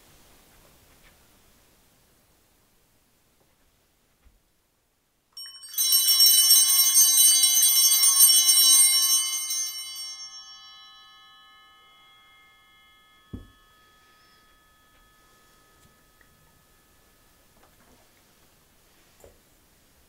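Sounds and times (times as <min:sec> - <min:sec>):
altar bells ringing: 0:05.4 - 0:18.4
light thump: 0:13.3 - 0:13.6.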